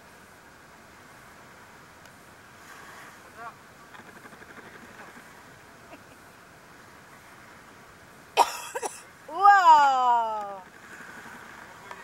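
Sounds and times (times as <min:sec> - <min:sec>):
gentle surf at shoreline: 0:00.0 - 0:12.0
person coughing: 0:08.4 - 0:09.0.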